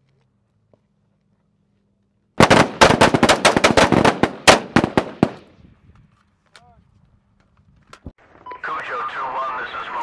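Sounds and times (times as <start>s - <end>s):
rapid rifle fire: 2.4s - 5.5s.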